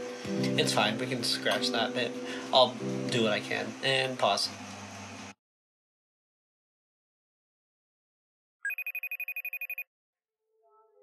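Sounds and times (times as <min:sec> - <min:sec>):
electronic trilling ring: 0:08.6 - 0:09.9.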